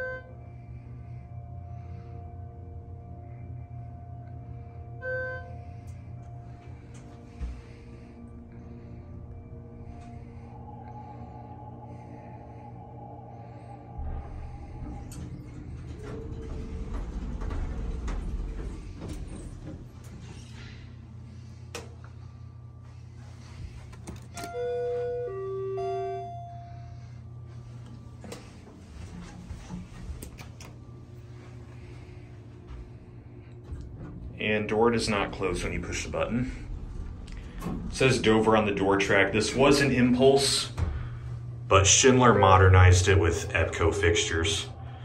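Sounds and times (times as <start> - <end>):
elevator hum and rumble: 0.0 - 45.0.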